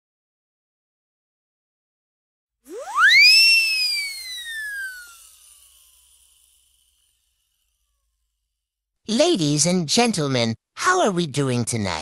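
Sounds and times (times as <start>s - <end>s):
whistle-like swoosh effect: 2.7s - 5.5s.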